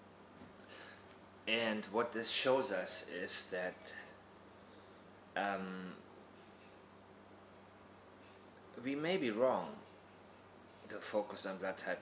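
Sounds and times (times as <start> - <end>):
man speaking: 1.5 - 4.2, 5.4 - 6.0, 8.8 - 9.8, 10.9 - 12.0
faint high-pitched chirping: 2.5 - 11.6.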